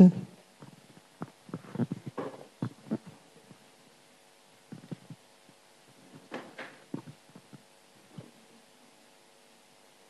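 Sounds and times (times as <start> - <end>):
microphone handling thumps: 0.6 - 3.6.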